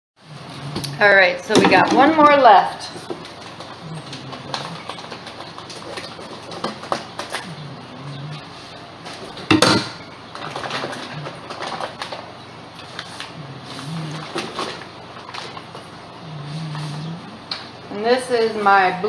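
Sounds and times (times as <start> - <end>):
plastic bag rustling: 10.2 - 17.8.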